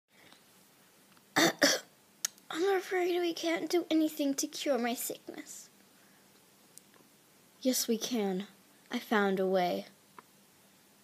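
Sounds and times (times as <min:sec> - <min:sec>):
person coughing: 0:01.4 - 0:01.9.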